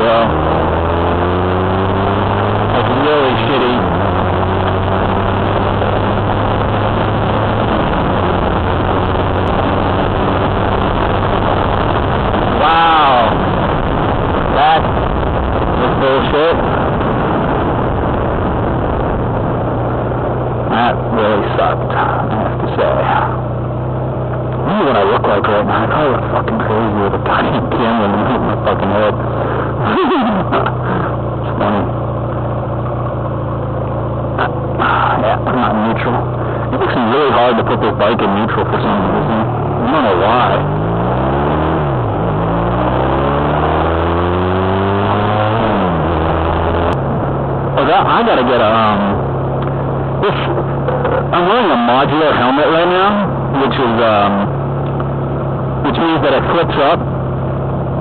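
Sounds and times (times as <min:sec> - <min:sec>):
motorcycle engine running: 0:00.0 - 0:58.0
wind rushing over microphone: 0:00.0 - 0:58.0.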